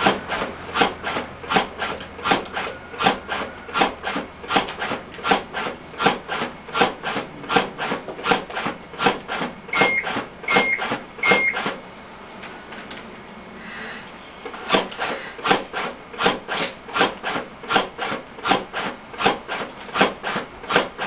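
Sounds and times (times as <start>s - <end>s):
mechanical cpr device rasping: 0.0s - 11.8s, 14.7s - 21.0s
short high beeps: 9.7s - 11.6s.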